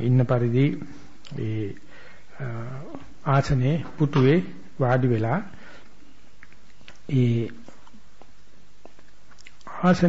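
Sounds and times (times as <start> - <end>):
man speaking slowly: 0.0 - 5.6, 7.0 - 7.8.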